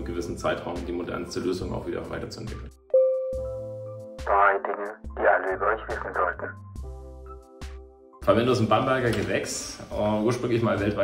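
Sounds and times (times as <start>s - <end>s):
background music with held chords: 0.0s - 11.0s
person speaking: 4.3s - 6.6s.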